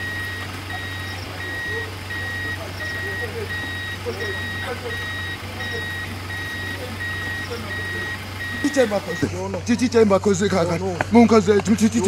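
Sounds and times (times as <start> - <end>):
reversing alarm beeping: 0.0 - 9.3.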